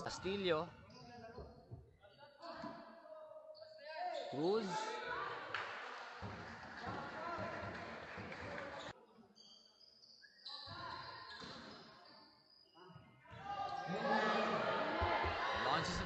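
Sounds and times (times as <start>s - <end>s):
players' voices: 13.3s - 16.0s.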